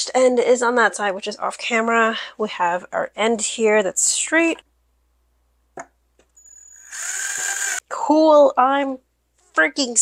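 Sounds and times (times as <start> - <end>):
drill motor whining: 6.4 - 7.8
drill click: 6.6 - 7.8.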